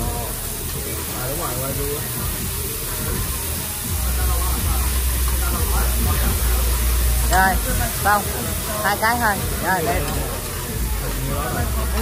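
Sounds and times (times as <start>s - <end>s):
background music: 0.0s - 12.0s
meat sizzling on a grill: 0.0s - 12.0s
restaurant chatter: 0.0s - 12.0s.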